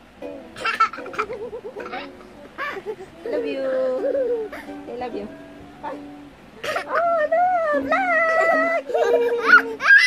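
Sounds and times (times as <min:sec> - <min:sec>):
young child whining: 0:07.8 - 0:10.0.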